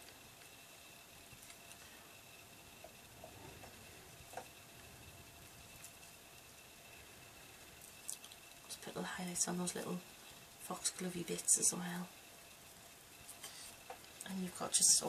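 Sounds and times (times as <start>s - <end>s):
faint steady hiss: 0.0s - 15.0s.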